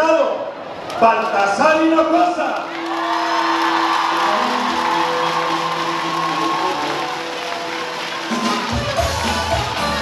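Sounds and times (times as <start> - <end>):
crowd cheering and clapping: 2.5 - 10.0
music playing: 3.2 - 10.0.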